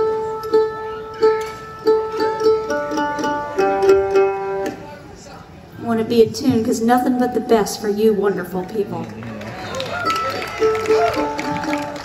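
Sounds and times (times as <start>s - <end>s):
string instruments being tuned: 0.0s - 5.1s, 10.0s - 12.0s.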